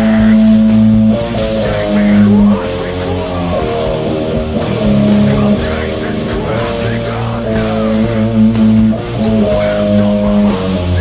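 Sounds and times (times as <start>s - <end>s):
distorted electric guitar metal riff: 0.0s - 11.0s.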